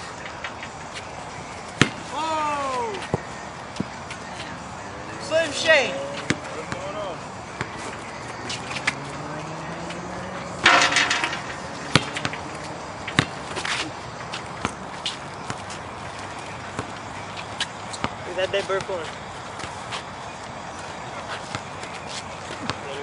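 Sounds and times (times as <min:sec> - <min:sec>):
feet on concrete court: 0:00.0 - 0:05.0, 0:05.8 - 0:23.0
basketball bouncing: 0:10.6 - 0:13.7.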